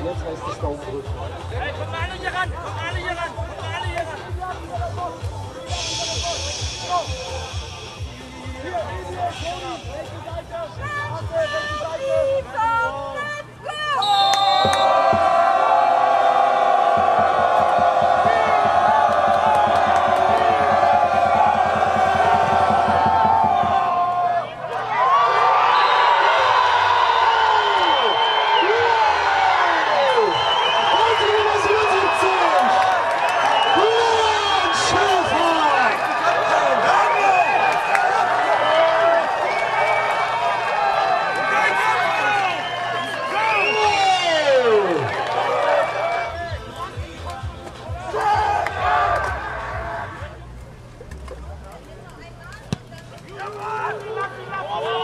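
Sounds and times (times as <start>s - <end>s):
crowd cheering and shouting: 0.0s - 55.0s
crowd voices din: 0.0s - 55.0s.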